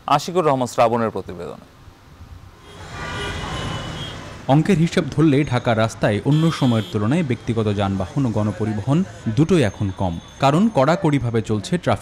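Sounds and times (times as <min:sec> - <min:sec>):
traffic engines din: 0:01.6 - 0:12.0
faint car horns: 0:02.6 - 0:04.4, 0:06.3 - 0:07.1.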